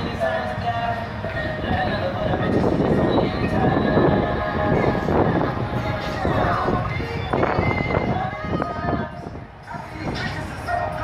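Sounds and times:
hip-hop music through car stereo: 0:00.0 - 0:11.0.

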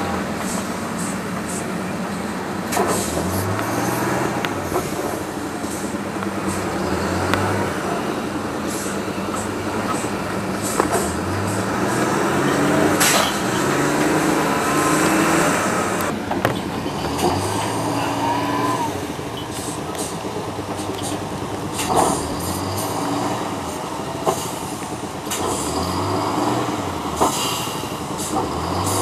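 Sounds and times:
diesel engine working: 0:00.0 - 0:29.0
machine hiss: 0:00.0 - 0:29.0
sharp metallic clanks: 0:00.0 - 0:29.0.

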